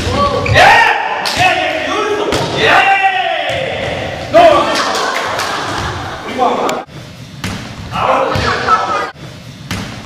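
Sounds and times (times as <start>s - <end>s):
ball thudding on gym floor: 7.4s - 8.6s, 9.6s - 10.0s.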